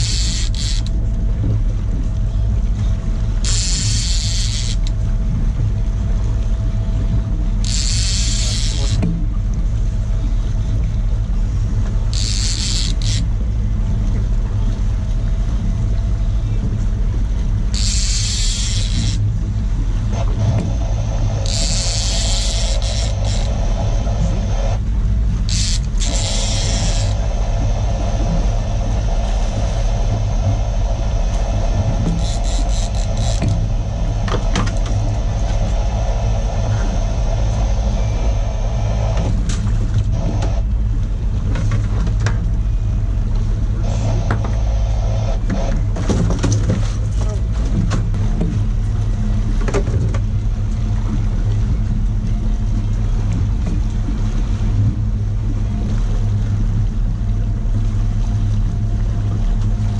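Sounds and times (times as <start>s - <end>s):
boat engine drone: 0.0s - 59.9s.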